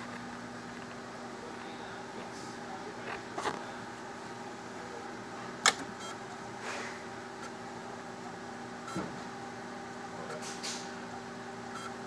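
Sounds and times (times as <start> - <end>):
electrical hum of motor: 0.0 - 12.0.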